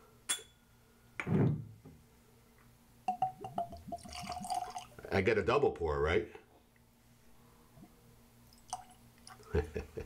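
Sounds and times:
liquid glugging from bottle: 3.2 - 5.0.

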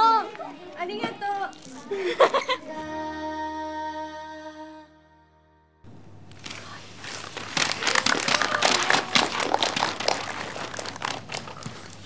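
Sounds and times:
group clapping: 6.4 - 12.0.

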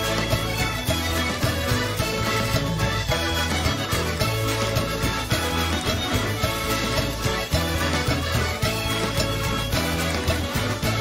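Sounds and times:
instrumental music with bass line: 0.0 - 11.0.

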